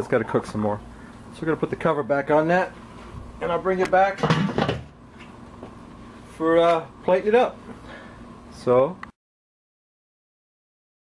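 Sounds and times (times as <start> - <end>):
metal grill lid clattering: 4.2 - 4.9.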